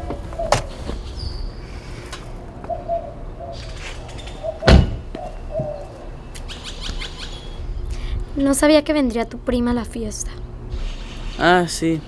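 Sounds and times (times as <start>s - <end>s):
doves cooing: 0.0s - 7.8s
bird calls: 0.4s - 2.0s, 2.6s - 7.8s
car door shutting: 4.6s - 5.8s.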